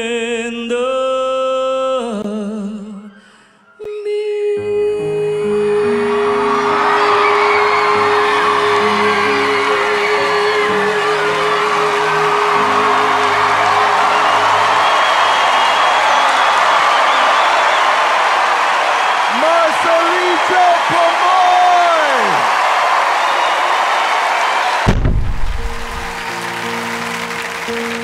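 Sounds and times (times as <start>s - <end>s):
singer holding long note: 3.8s - 17.3s
backing music: 5.6s - 16.1s, 24.9s - 28.0s
audience cheering and whooping: 5.6s - 28.0s.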